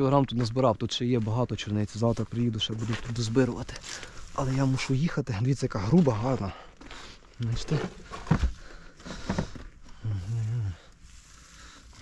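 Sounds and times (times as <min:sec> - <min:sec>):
berries rustling: 0:01.2 - 0:12.0.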